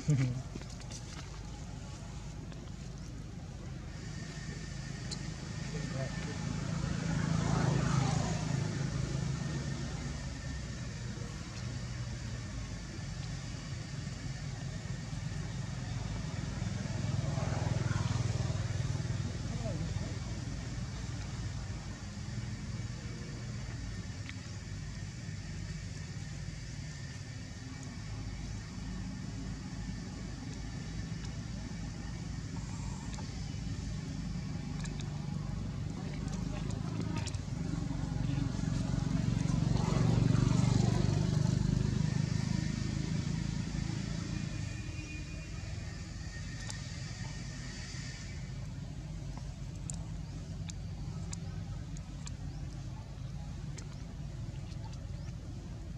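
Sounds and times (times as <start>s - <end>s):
low traffic hum: 0.0s - 55.9s
motor vehicles passing by: 0.0s - 55.9s.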